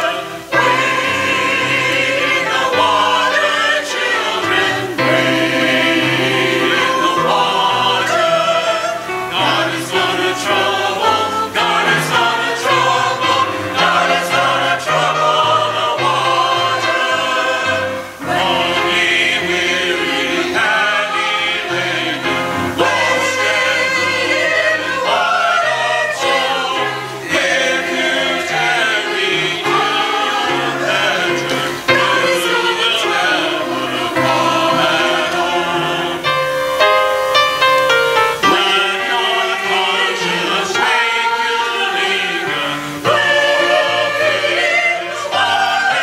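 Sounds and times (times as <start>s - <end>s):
choir singing in parts: 0.0s - 46.0s.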